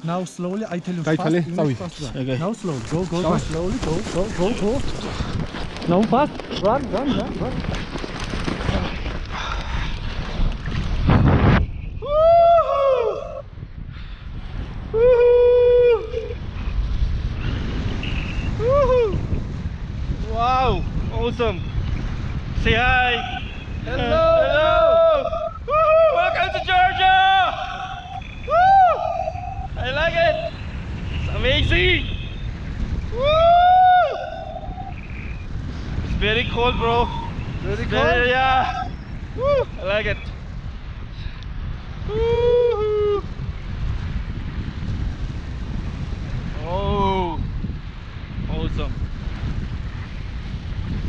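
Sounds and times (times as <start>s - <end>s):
wind rushing over microphone: 0.0s - 51.0s
feet running through snow: 2.6s - 10.4s
person shouting woo: 12.0s - 13.4s, 14.9s - 16.4s, 18.6s - 19.2s, 24.0s - 29.7s, 33.2s - 34.9s, 38.6s - 39.7s, 42.1s - 43.3s.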